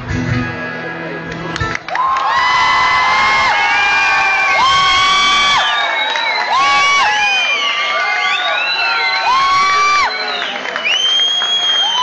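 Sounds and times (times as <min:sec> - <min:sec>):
audience cheering: 0:01.7 - 0:12.0
high-pitched screams and whoops: 0:01.9 - 0:12.0.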